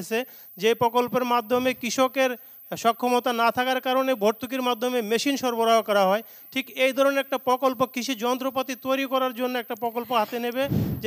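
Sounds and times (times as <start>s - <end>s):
microphone handling thump: 10.6s - 11.0s.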